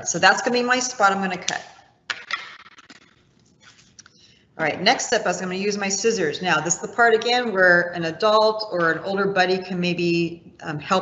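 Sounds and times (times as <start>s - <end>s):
rustling and scraping of materials: 2.2s - 4.2s.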